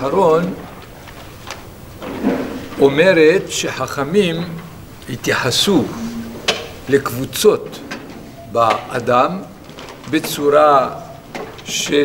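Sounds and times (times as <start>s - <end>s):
man lecturing: 0.0s - 0.8s, 2.7s - 7.9s, 8.5s - 12.0s
faint low vocal murmur: 4.4s - 7.3s.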